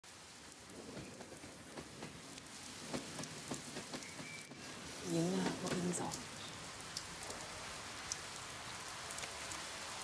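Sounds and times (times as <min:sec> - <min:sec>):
rain-like hiss: 0:00.0 - 0:10.0.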